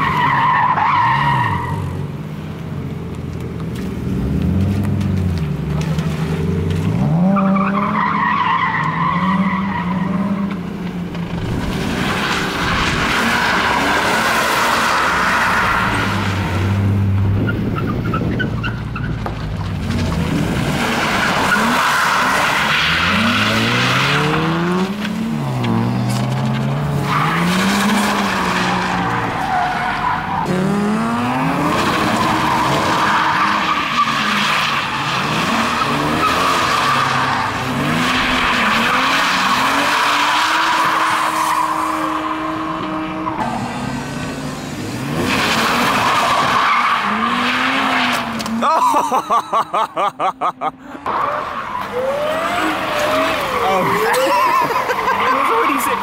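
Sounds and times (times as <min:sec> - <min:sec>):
car engine revving: 0:03.7 - 0:48.7.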